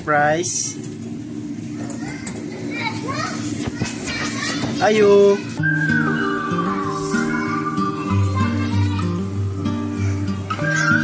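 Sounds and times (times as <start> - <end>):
children playing and chattering: 1.5 - 11.0.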